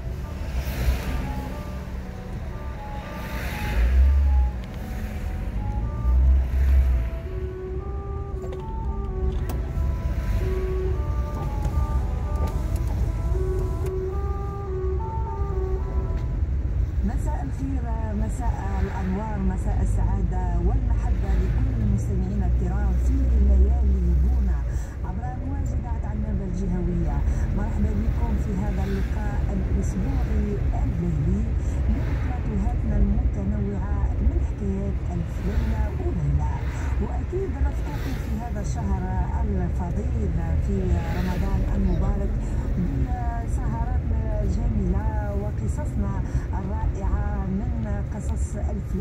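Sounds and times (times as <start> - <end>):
music with steady melody: 0.0 - 16.5
car engine and road noise: 0.0 - 49.0
person's voice: 17.0 - 49.0.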